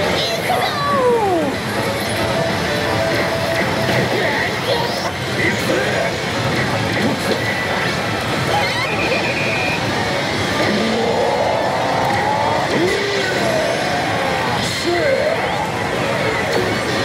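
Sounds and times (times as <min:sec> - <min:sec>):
slot machine noise: 0:00.0 - 0:17.0
electronic effect sounds: 0:01.5 - 0:17.0.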